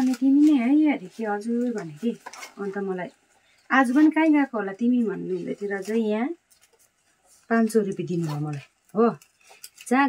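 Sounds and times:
woman talking: 0.0s - 6.4s, 7.5s - 9.2s.

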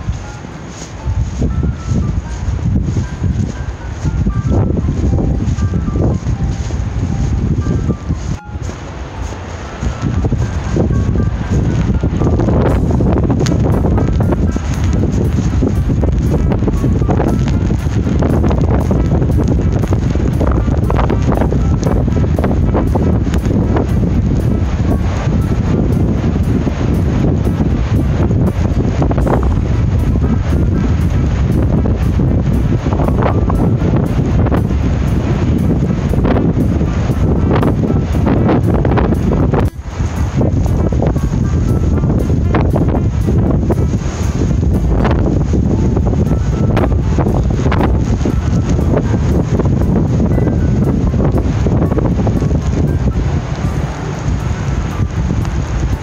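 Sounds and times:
rough sea surf: 0.0s - 56.0s
strong wind on microphone: 0.0s - 56.0s.

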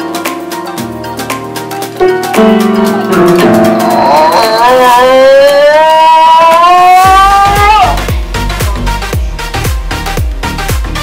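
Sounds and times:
dog howling: 3.6s - 8.0s.

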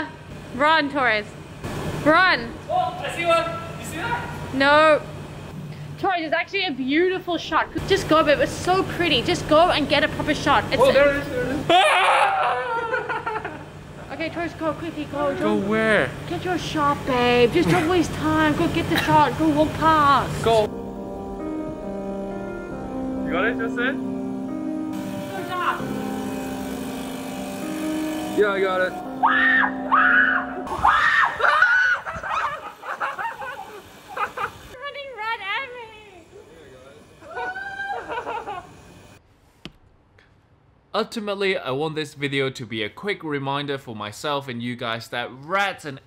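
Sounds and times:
woman yelping and squealing: 11.7s - 12.8s, 29.2s - 32.6s, 37.3s - 38.2s
person screaming in fright: 11.7s - 13.0s, 29.2s - 32.5s, 37.2s - 38.2s.

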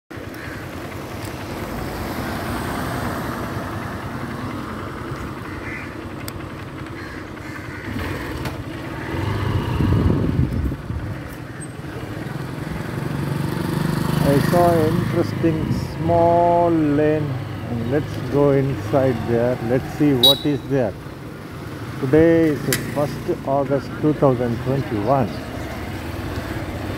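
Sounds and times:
motorcycle engine rumble: 0.1s - 26.9s
street traffic: 0.1s - 26.9s.

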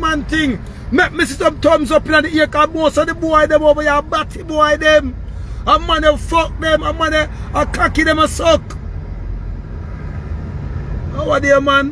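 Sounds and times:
vehicle cabin rumble: 0.0s - 11.9s.

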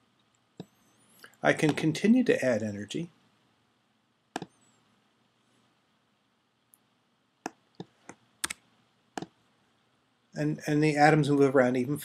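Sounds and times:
computer click: 4.4s - 4.6s.

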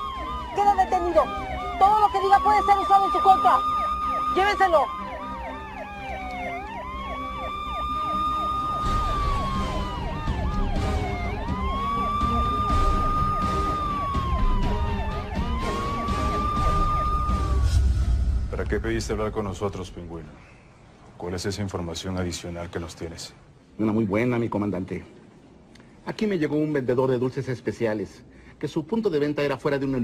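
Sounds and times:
siren yelping warble: 0.0s - 17.9s
police car siren wailing: 0.0s - 18.1s
low rumble: 16.5s - 21.0s.

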